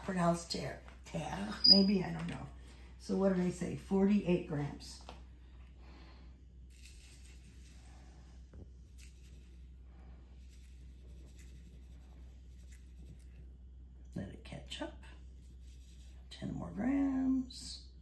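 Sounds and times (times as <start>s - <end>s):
low steady hum: 0.0s - 18.0s
sugar pouring into a bowl: 6.7s - 8.0s.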